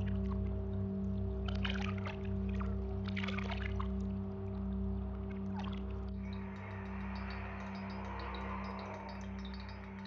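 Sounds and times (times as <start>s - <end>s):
low drone hum: 0.0s - 10.0s.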